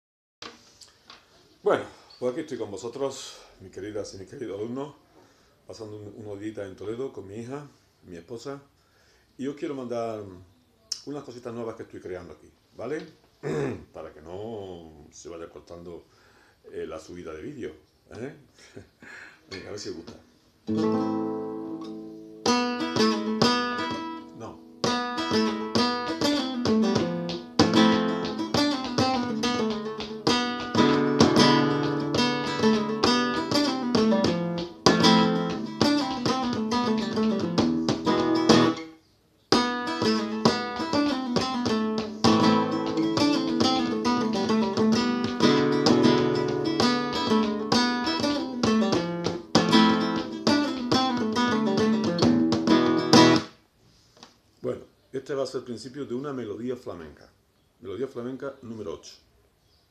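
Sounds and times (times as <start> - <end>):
acoustic guitar flamenco melody: 20.6 - 53.6.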